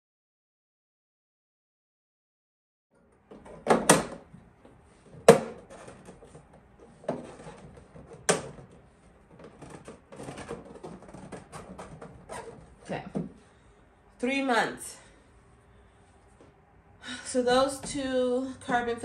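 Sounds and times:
rustling handling: 4.6 - 13.6.

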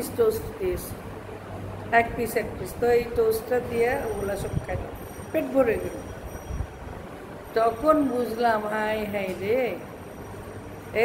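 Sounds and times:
woman speaking: 0.0 - 1.0, 1.9 - 6.1, 7.5 - 9.9.

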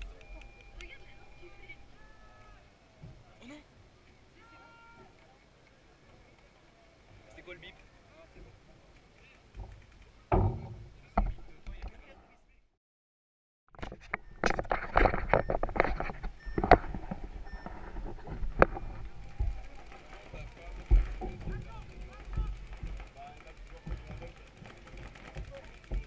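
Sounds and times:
people shouting: 1.3 - 2.9, 4.3 - 5.2.

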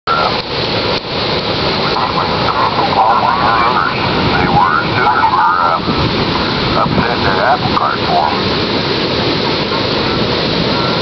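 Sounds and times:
heavy surf rushing: 0.1 - 11.0
wind on microphone: 0.1 - 11.0.

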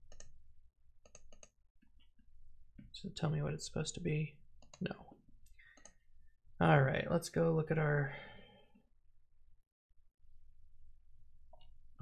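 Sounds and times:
computer mouse or key clicks: 0.0 - 0.4, 1.0 - 1.6, 5.7 - 6.0.

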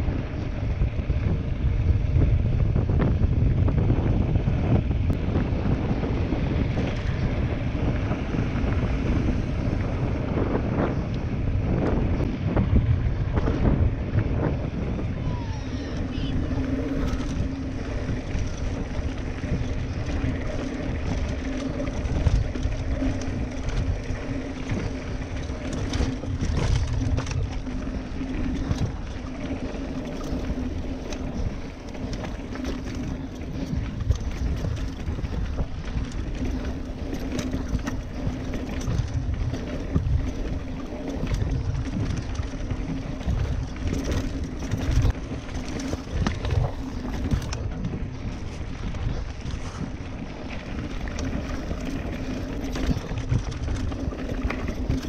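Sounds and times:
bike rattling and knocking: 0.0 - 55.0
bike tyres rumbling on dirt: 0.0 - 55.0.

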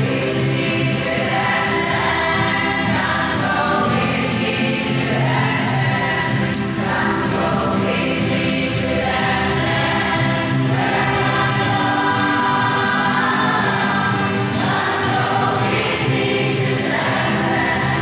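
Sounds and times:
choir singing a hymn: 0.0 - 18.0
ukuleles playing: 0.0 - 18.0.

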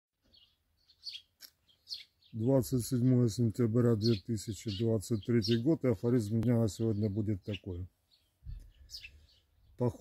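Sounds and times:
faint bird chirps: 0.2 - 10.0.

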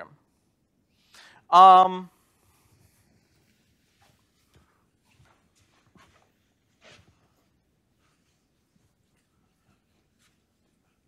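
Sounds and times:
faint footstep scuffs: 3.3 - 10.8.

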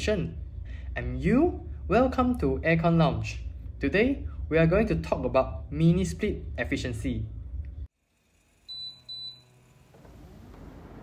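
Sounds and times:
short high electronic beeps: 8.7 - 9.5.

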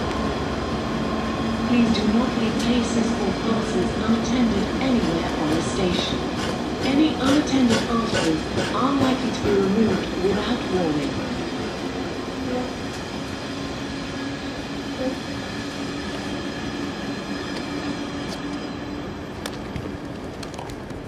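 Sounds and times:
train wheels on rails: 0.0 - 21.0.

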